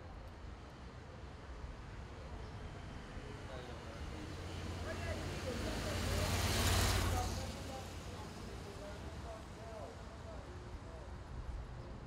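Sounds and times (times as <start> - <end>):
road vehicle passing: 4.2 - 9.4.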